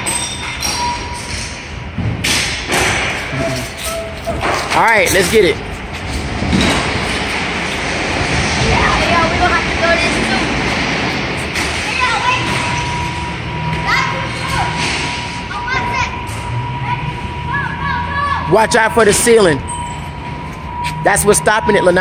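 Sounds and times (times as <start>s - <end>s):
loud background noise: 0.0s - 22.0s
steady high-pitched tone: 2.8s - 22.0s
children's voices: 8.6s - 18.5s.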